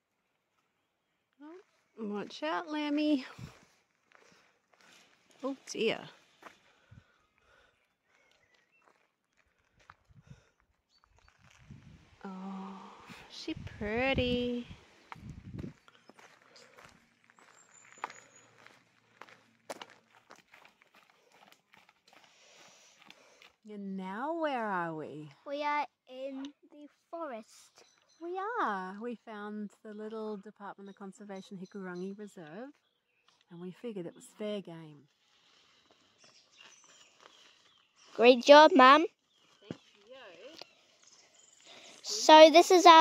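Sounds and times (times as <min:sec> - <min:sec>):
footsteps on gravel: 0:03.4 - 0:06.7, 0:08.1 - 0:10.4, 0:11.0 - 0:12.2, 0:14.5 - 0:23.6, 0:35.4 - 0:40.8.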